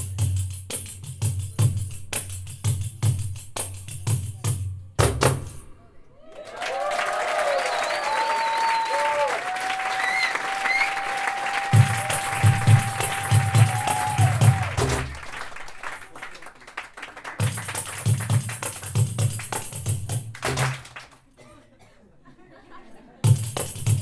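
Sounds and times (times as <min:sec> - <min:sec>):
audience clapping: 0:06.2 - 0:21.4
low drum beat: 0:11.7 - 0:15.2.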